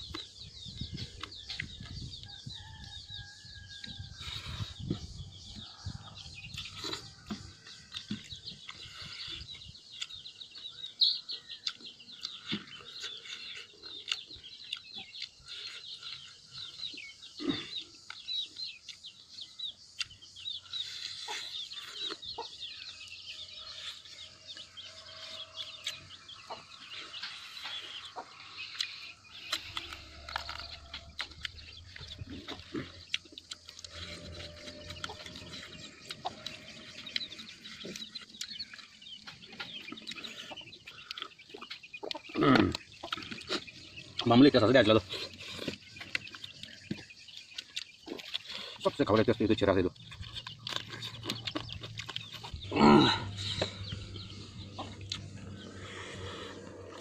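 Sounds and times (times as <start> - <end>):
chickens clucking: 0.0 - 57.0
eating and chewing sounds: 0.0 - 57.0
small birds chirping: 0.0 - 57.0.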